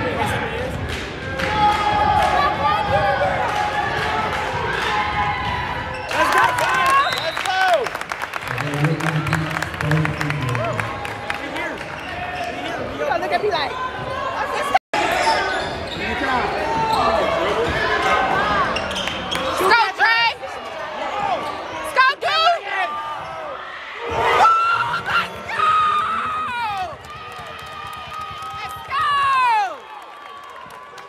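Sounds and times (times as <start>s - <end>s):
sneakers squeaking: 5.5s - 6.2s, 11.8s - 14.4s, 15.0s - 19.7s
crowd voices: 11.4s - 29.8s.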